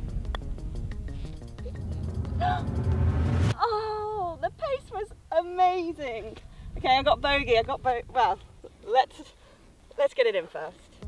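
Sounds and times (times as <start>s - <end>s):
wind rumble on microphone: 0.0s - 8.7s
woman's wavering cries and moans: 1.6s - 2.8s.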